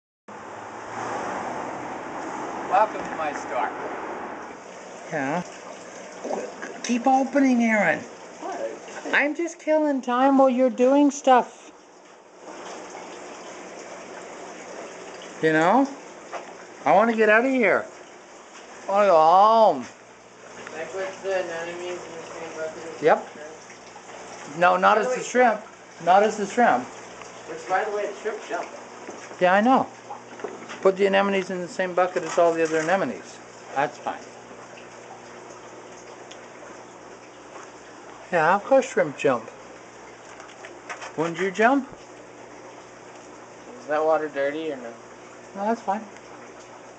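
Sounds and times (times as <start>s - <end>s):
water running: 0.3s - 46.9s.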